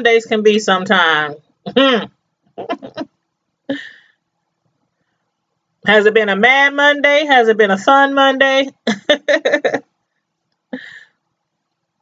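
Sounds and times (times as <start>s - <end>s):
woman laughing softly: 2.6s - 3.1s, 3.7s - 4.1s, 10.7s - 11.2s.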